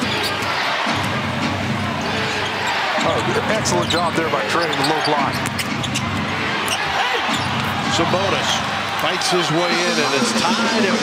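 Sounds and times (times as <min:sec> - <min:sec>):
arena crowd noise: 0:00.0 - 0:11.0
sneaker squeaks on court: 0:02.0 - 0:07.7.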